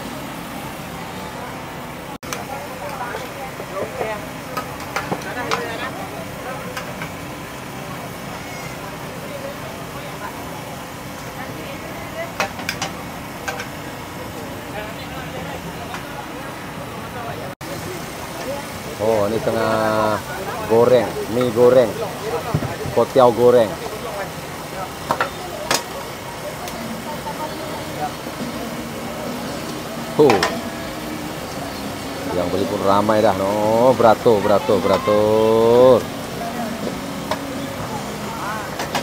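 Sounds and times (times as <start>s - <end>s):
background voices: 13.2s - 39.0s.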